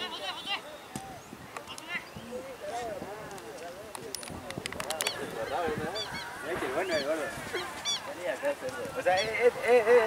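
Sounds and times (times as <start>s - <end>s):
voices shouting over one another: 5.2s - 9.6s.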